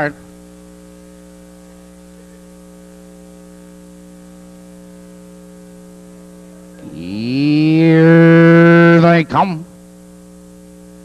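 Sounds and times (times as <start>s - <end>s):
electrical mains hum: 0.0s - 11.0s
man speaking: 6.8s - 9.7s.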